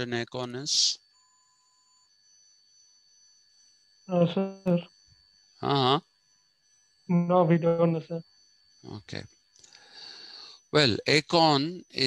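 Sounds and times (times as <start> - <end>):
faint high-pitched electronic tones: 0.0 - 3.4, 4.1 - 5.0, 5.6 - 9.2, 10.0 - 12.0.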